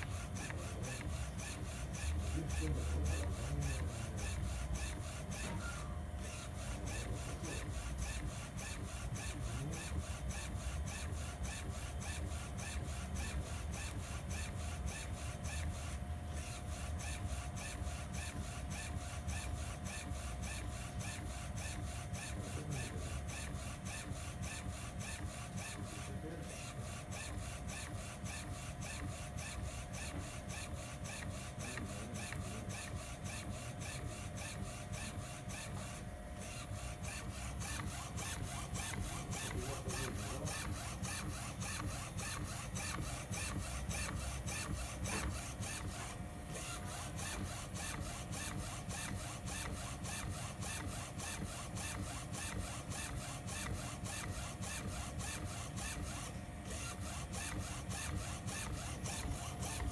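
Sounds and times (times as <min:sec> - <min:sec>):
printer mechanical hum pulsing: 0:00.0 - 0:59.9.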